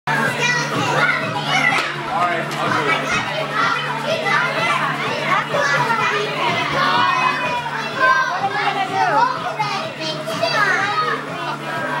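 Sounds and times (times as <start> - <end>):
children chattering: 0.1 - 12.0.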